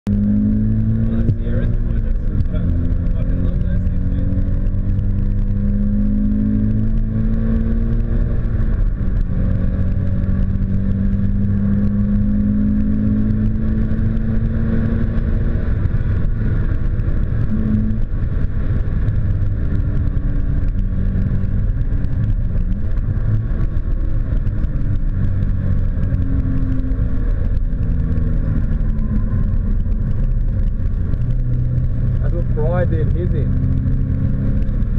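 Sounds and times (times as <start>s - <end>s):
road and tyre noise: 0.0s - 34.9s
car engine revving through gears: 0.1s - 34.9s.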